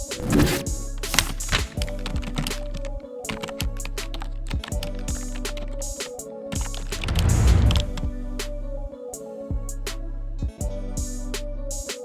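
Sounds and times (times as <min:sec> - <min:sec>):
keyboard typing clicks: 0:06.6 - 0:08.0
background music with bass line: 0:06.6 - 0:11.9.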